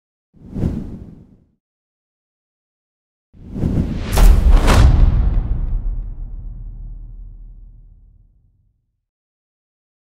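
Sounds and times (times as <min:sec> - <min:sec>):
low whoosh: 0:03.4 - 0:08.4.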